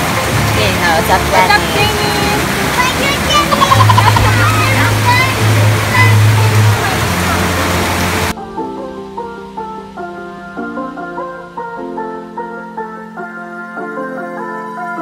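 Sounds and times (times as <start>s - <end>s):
heavy rain pouring: 0.0s - 13.4s
background music: 0.0s - 15.0s
people laughing and shouting: 2.8s - 7.0s.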